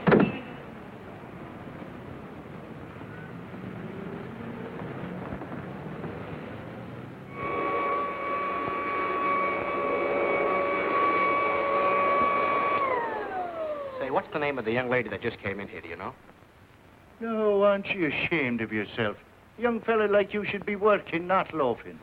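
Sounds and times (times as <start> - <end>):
street traffic: 0.0 - 22.0
steady high tone: 7.3 - 14.4.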